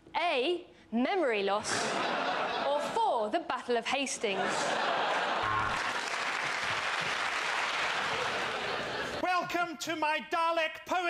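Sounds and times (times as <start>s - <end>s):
studio audience applauding: 5.1s - 9.2s.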